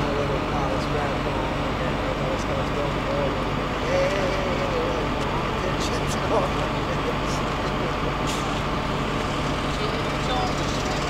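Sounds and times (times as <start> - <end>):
crane engine running: 0.0 - 11.0.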